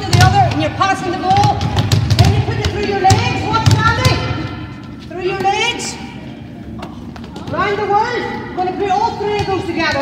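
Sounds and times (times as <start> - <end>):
basketballs bouncing on floor: 0.0 - 5.9, 6.8 - 8.0, 9.0 - 10.0.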